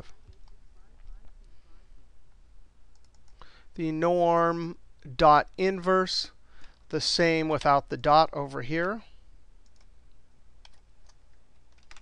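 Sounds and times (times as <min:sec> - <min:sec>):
low steady hum: 0:00.0 - 0:12.0
keyboard and mouse clicks: 0:02.9 - 0:03.4, 0:10.6 - 0:12.0.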